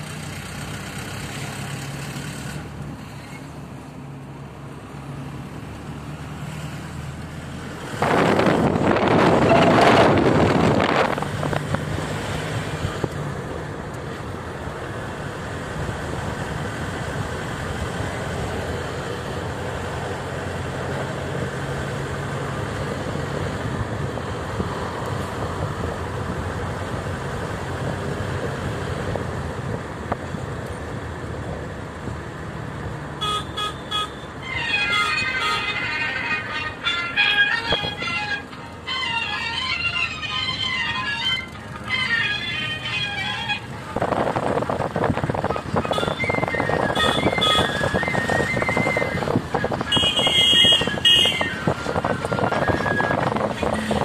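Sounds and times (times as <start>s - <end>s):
car cabin engine and tyre noise: 0.0s - 54.0s
loud rush of noise: 7.8s - 11.7s.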